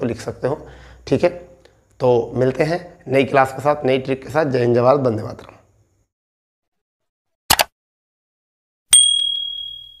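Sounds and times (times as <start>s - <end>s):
bright bell ding: 8.9s - 10.0s.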